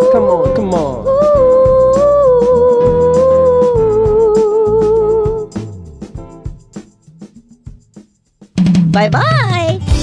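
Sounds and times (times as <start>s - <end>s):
steady drum beat: 0.0s - 10.0s.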